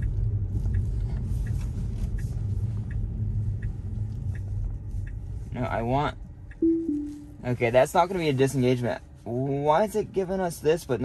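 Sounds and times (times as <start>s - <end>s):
turn signal ticking: 0.0s - 9.6s
road and tyre rumble: 0.0s - 11.0s.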